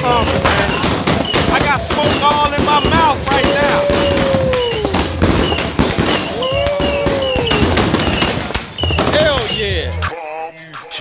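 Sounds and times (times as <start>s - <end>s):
people whooping: 0.0s - 9.0s
firecrackers crackling: 0.0s - 10.0s.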